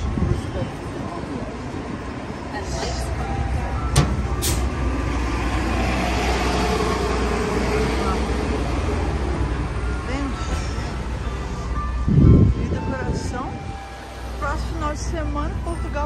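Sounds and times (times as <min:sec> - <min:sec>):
bus engine rumble: 0:00.0 - 0:16.0
street traffic: 0:00.0 - 0:16.0.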